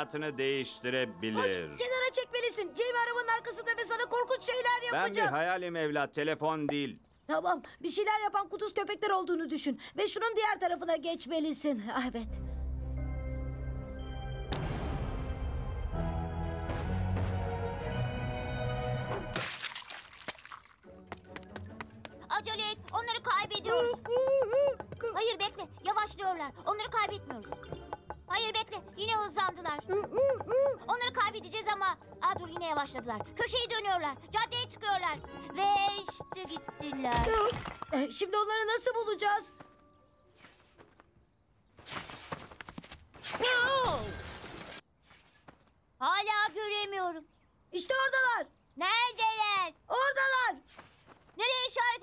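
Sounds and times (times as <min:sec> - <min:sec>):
cartoon background music: 0:00.0 - 0:05.6, 0:20.8 - 0:40.3
person speaking: 0:22.3 - 0:27.5
held yell: 0:23.6 - 0:25.2.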